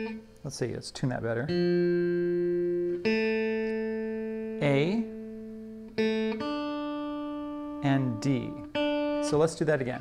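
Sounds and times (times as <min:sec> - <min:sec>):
electric guitar strings ringing: 0:00.0 - 0:00.4, 0:01.2 - 0:10.0.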